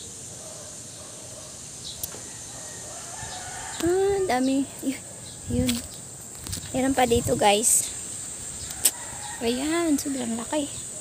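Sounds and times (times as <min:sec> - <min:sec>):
rooster crowing faintly: 0:02.1 - 0:04.3, 0:08.7 - 0:10.2.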